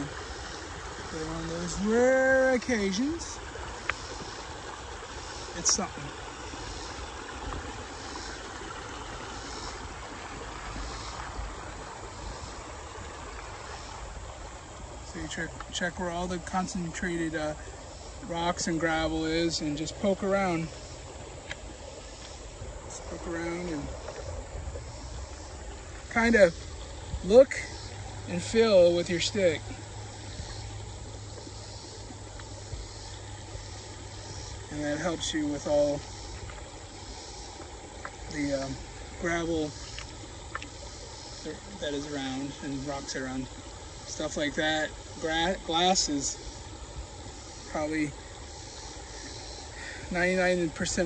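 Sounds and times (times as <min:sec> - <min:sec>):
creek running over gravel: 0:00.0 - 0:51.0.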